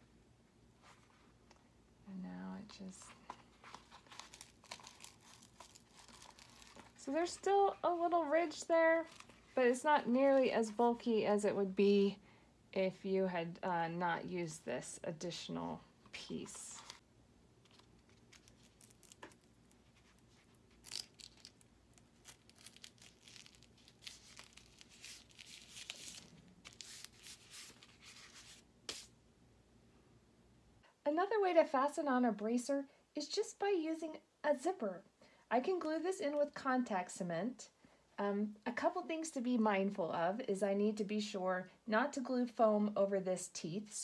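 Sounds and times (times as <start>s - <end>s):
velcro strip crackling: 3.6s - 7.6s, 17.6s - 29.1s.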